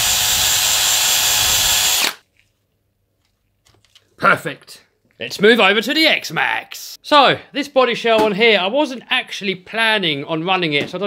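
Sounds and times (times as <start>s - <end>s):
cordless drill reaming plastic: 0.0s - 2.2s.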